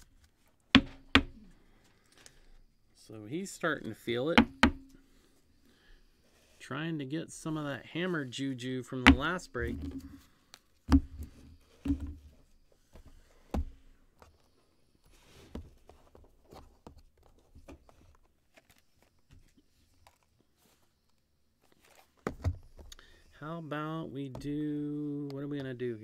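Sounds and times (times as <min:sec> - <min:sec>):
faint rustling of packaging: 0:09.5 - 0:23.4.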